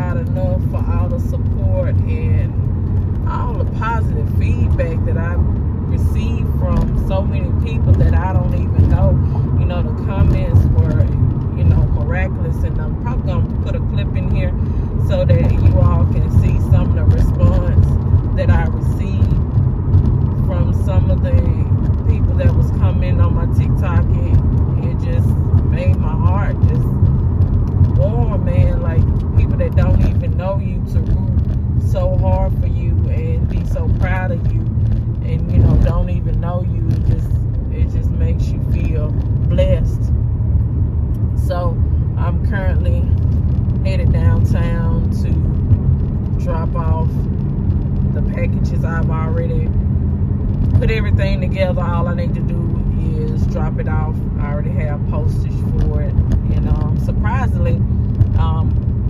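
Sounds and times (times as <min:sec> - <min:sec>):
car road and engine rumble: 0:00.0 - 0:59.0.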